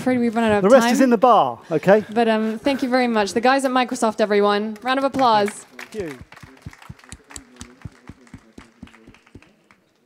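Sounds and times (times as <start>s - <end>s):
few hands clapping: 4.8s - 10.0s.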